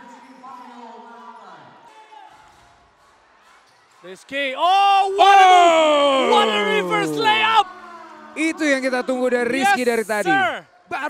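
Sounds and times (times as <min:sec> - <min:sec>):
faint voices in arena: 0:00.0 - 0:11.0.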